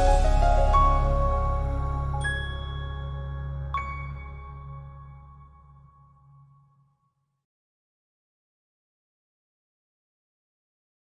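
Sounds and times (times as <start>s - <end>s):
low hum: 0.0s - 6.3s.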